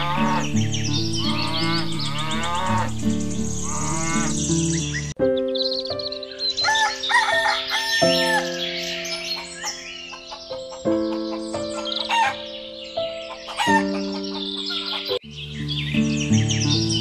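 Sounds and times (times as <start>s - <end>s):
chicken calls: 0.0s - 4.6s, 6.5s - 15.2s
background music: 0.0s - 17.0s
cow mooing: 1.2s - 3.0s.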